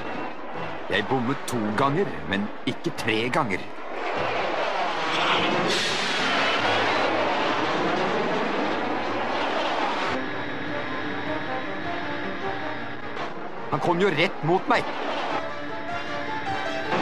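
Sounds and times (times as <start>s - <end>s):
cartoon jet engine whoosh: 3.9s - 10.2s
dramatic background music: 5.0s - 17.0s.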